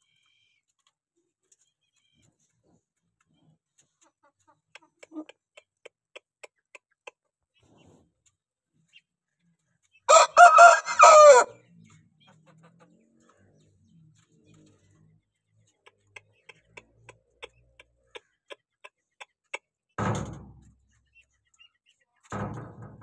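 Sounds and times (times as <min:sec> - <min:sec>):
rooster crowing: 0:10.1 - 0:11.6.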